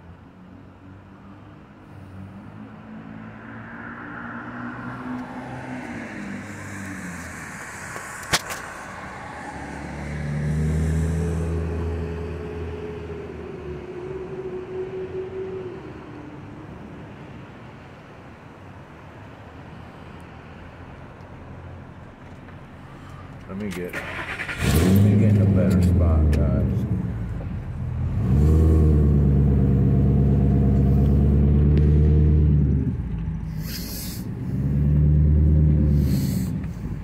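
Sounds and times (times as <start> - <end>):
road traffic engines: 0.0 - 37.0.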